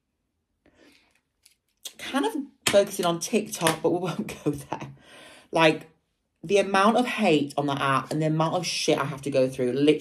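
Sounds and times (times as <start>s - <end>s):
soft breath: 0.6s - 1.3s, 5.0s - 5.5s
person speaking: 1.8s - 10.0s.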